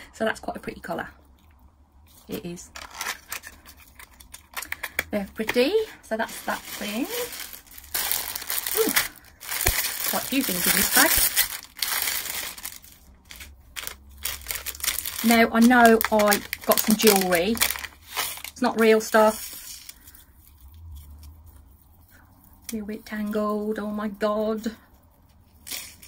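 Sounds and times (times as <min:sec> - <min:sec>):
low steady hum: 0:00.0 - 0:26.0
plastic bag crinkling: 0:02.1 - 0:21.5.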